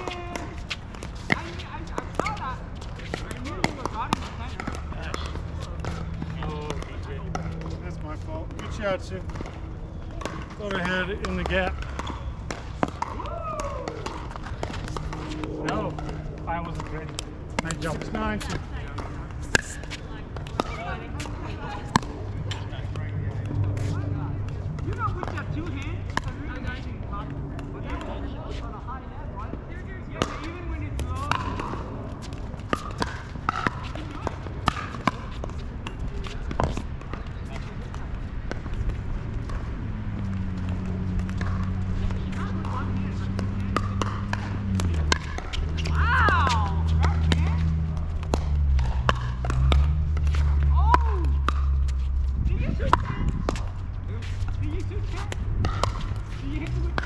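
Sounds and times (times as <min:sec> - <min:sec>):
steady low hum: 0:00.0 - 0:57.0
paddles hitting plastic ball: 0:08.5 - 0:26.6, 0:30.2 - 0:52.2, 0:52.8 - 0:57.0.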